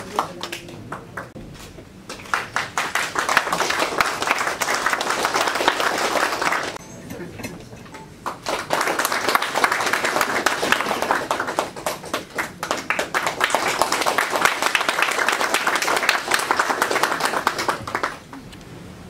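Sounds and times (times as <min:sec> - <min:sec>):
people clapping: 0:00.0 - 0:01.4, 0:02.0 - 0:06.8, 0:08.0 - 0:18.4.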